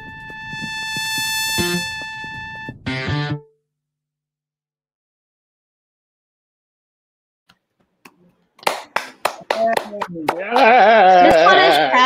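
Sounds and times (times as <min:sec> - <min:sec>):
hand claps: 0:08.0 - 0:11.9
person cheering: 0:10.3 - 0:12.0.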